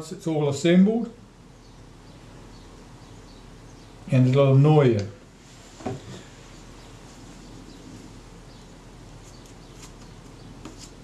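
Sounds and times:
room hum: 0.0 - 11.0.

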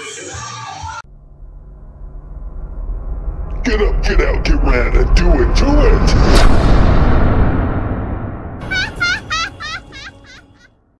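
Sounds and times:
deep booming rumble: 1.0 - 8.6.

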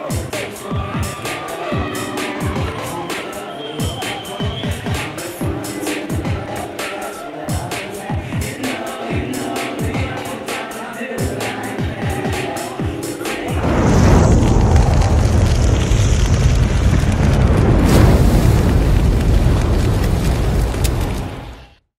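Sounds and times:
background music with a beat: 0.0 - 13.9
cinematic boom and rumble: 13.6 - 21.7.

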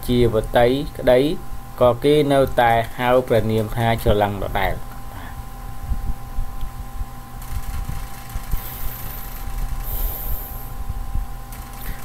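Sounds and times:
faint steady hum: 0.0 - 12.0
low background rumble: 0.0 - 12.0.

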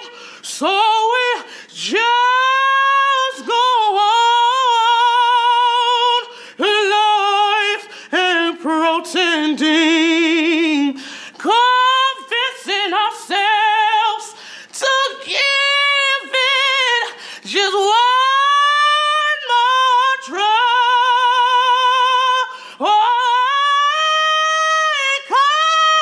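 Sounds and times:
short breaths: 0.0 - 0.5, 1.4 - 1.8, 6.3 - 6.6, 7.9 - 8.1, 11.0 - 11.4, 14.3 - 14.8, 17.1 - 17.5, 22.5 - 22.8.

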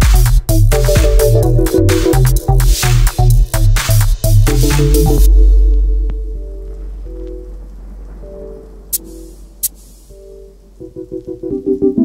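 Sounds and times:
deep sub-bass: 0.0 - 9.6
soft synth chords: 4.3 - 12.0
faint hiss-like noise: 5.3 - 11.5.

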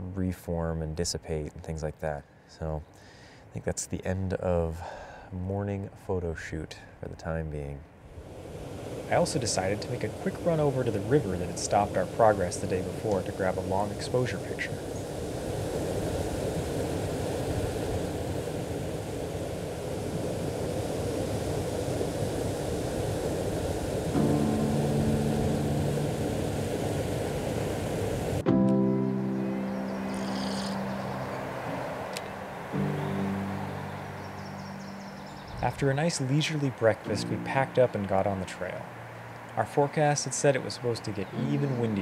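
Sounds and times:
river water rushing over rocks: 8.3 - 28.4
soft background music: 24.1 - 27.6, 28.4 - 42.0.

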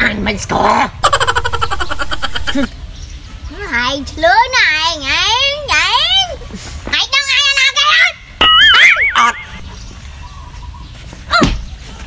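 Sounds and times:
high-pitched warbling squeal: 8.4 - 9.7.

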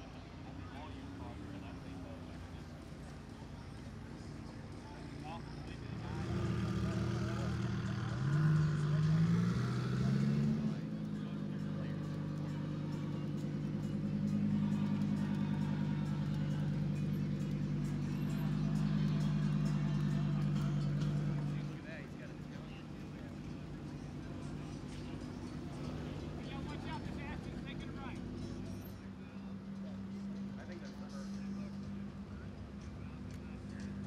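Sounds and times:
sports car engine at low revs: 0.2 - 34.0
sports car engine revving: 0.8 - 34.0.

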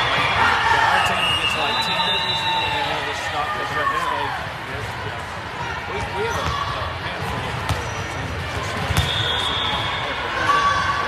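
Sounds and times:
echoing chatter of people: 0.0 - 11.0.

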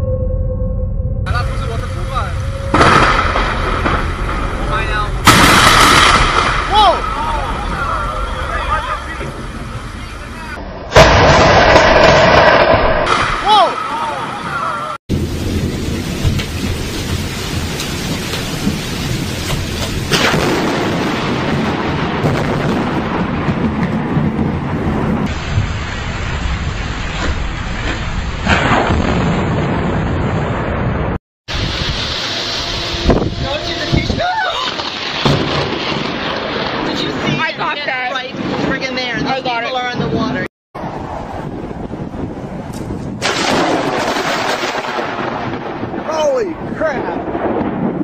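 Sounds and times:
rain falling steadily: 1.3 - 10.6, 13.4 - 28.5, 43.3 - 47.6
loud thunder cracks and rumble: 1.3 - 48.0.

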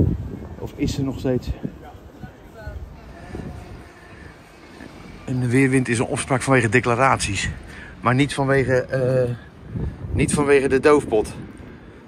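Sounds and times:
faint distant voices: 0.0 - 12.0
low street rumble: 0.0 - 12.0.

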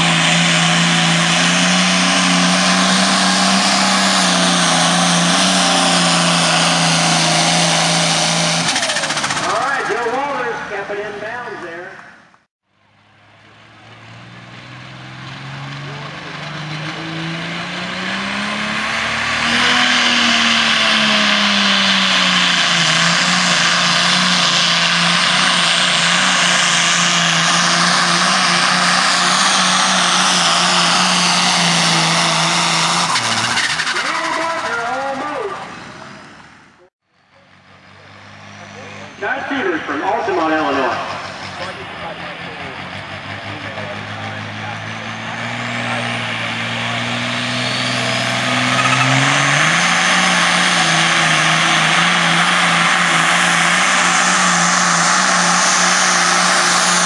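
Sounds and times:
diesel tractor engines at full throttle: 0.0 - 57.0.

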